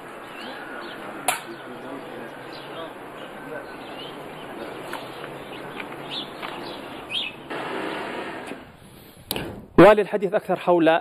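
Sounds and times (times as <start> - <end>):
bird chirps: 0.0 - 7.5
steady background noise: 0.0 - 10.2.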